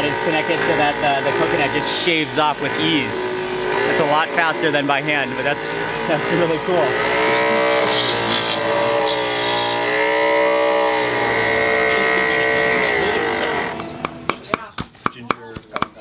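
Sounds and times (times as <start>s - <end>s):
electric motor whining: 0.0s - 14.4s
cleaver chopping on wooden block: 13.8s - 16.0s.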